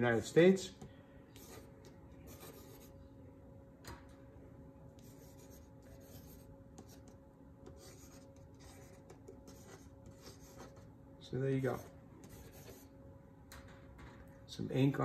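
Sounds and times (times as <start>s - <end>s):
pen nib scratching on paper: 1.4s - 1.7s, 2.3s - 2.9s, 5.0s - 7.1s, 7.7s - 10.8s, 11.7s - 12.9s.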